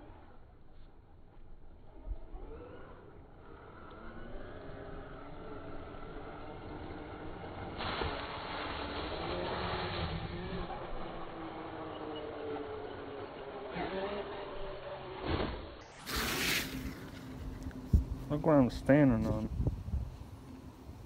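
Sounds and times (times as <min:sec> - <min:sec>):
electric motor whining: 0:02.2 - 0:18.2
tyres churning over dirt: 0:06.7 - 0:19.4.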